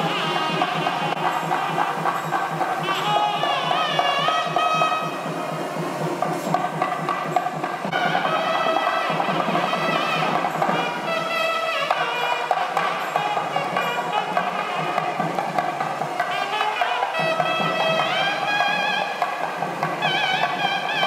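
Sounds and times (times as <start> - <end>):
steady percussion beats: 0.0 - 21.0.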